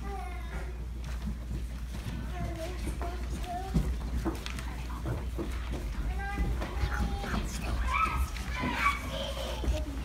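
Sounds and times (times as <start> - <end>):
footsteps and shuffling: 0.0 - 10.0
steady low hum: 0.0 - 10.0
children calling and chattering: 1.9 - 10.0.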